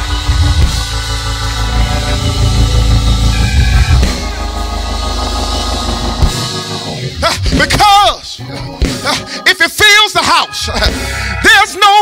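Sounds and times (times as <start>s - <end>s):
bass: 0.0s - 12.0s
drums: 0.0s - 12.0s
keyboard chords: 0.0s - 12.0s.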